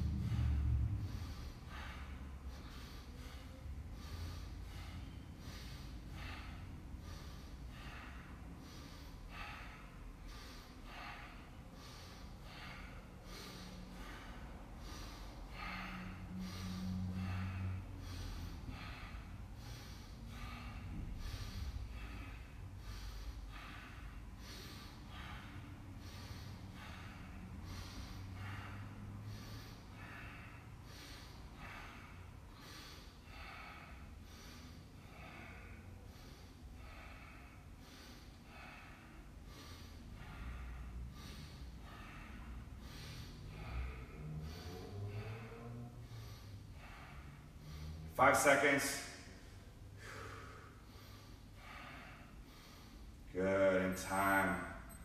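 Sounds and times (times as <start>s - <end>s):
man breathing deeply through nose: 0.0s - 55.0s.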